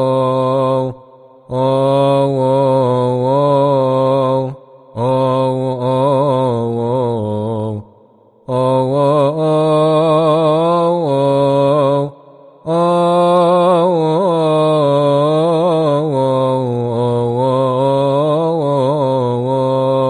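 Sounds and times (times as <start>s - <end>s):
man chanting: 0.0s - 20.0s.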